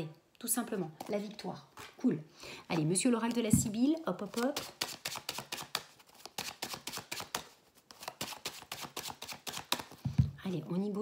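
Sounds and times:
playing cards shuffling: 0:02.7 - 0:10.2.

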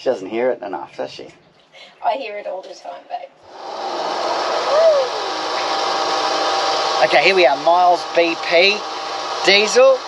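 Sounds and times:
diesel flowing into fuel tank: 0:03.5 - 0:10.0.

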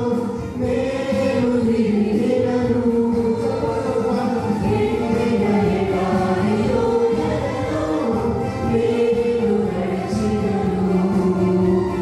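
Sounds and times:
group singing into microphones: 0:00.0 - 0:12.0.

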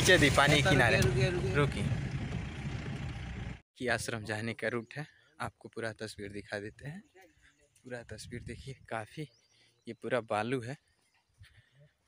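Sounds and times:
man talking: 0:00.0 - 0:01.9, 0:03.8 - 0:07.1, 0:07.9 - 0:10.8
vehicle rumbling on rough track: 0:00.0 - 0:03.6.

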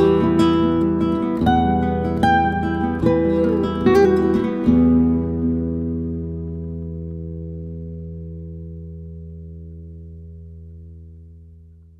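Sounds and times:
acoustic guitar chord ringing: 0:00.0 - 0:11.2.

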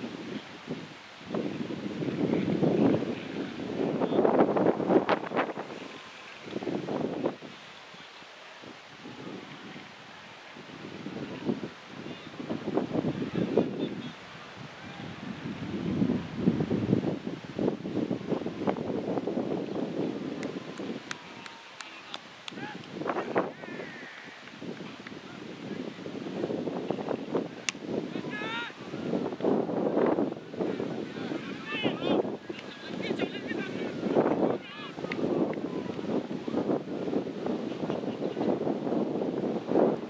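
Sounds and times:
wind buffeting microphone: 0:00.0 - 0:40.0
indistinct voices: 0:20.6 - 0:25.6.

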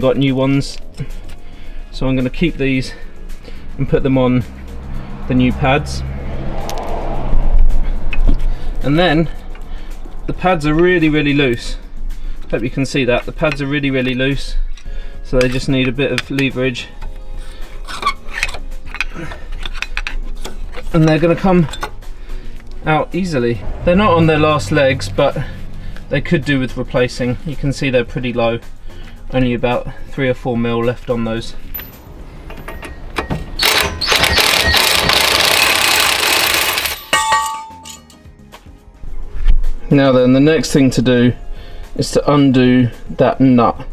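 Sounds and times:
metallic clicks and scrapes: 0:13.2 - 0:22.8
metallic clink: 0:31.7 - 0:38.3
impact driver running: 0:33.6 - 0:37.0.

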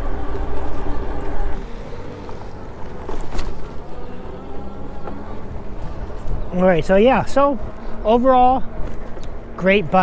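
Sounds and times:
bike tires rolling on pavement: 0:00.0 - 0:10.0.

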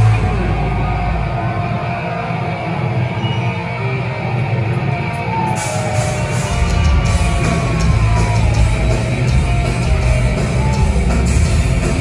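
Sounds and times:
distorted electric guitar: 0:00.0 - 0:12.0
drums: 0:00.0 - 0:12.0.

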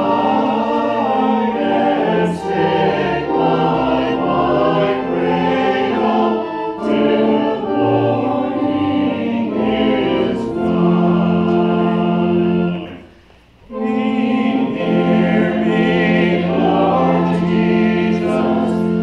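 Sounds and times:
church choir singing a hymn: 0:00.0 - 0:13.1, 0:13.7 - 0:19.0.

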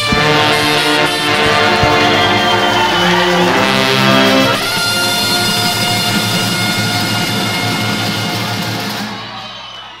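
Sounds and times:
steady drum beat: 0:00.0 - 0:09.3
brass band music: 0:00.0 - 0:09.4.

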